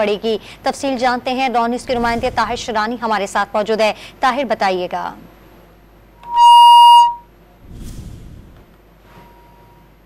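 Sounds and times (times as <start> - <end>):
steady electronic beep: 6.2 - 7.3
brief low rumble: 7.6 - 8.7.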